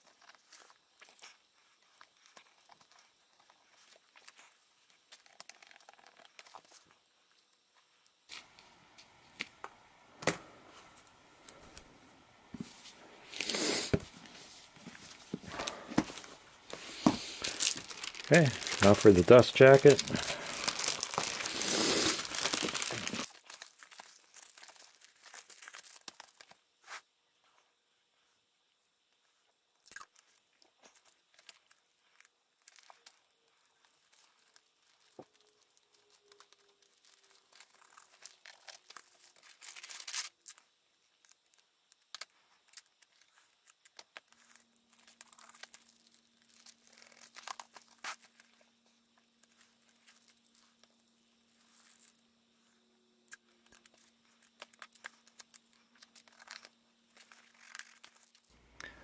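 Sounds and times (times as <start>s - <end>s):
plastic cover crinkling: 0.0s - 7.7s, 8.3s - 27.0s, 29.8s - 59.0s.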